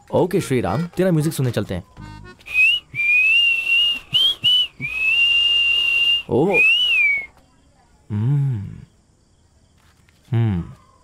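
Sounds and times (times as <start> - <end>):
man whistling a tune: 2.4 - 7.3.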